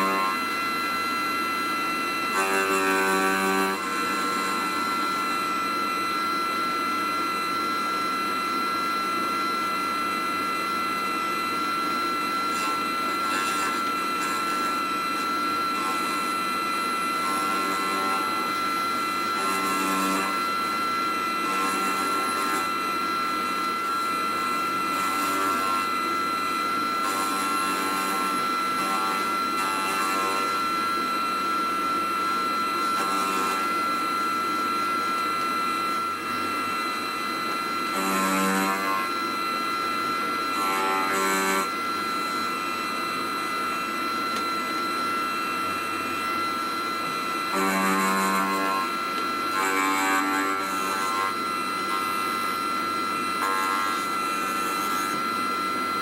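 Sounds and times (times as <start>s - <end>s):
cutter chatter buzzing: 0.0s - 0.4s
milling machine motor whine: 0.0s - 56.0s.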